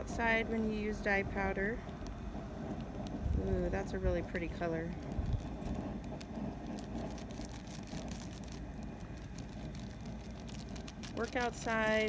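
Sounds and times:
steady low rumble: 0.0 - 12.0
packet crinkling and clicking: 1.8 - 3.4, 4.9 - 12.0.

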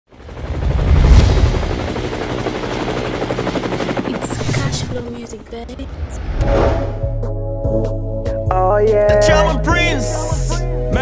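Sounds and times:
helicopter rotor chopping: 0.1 - 6.2
deep rumble: 4.2 - 7.8.

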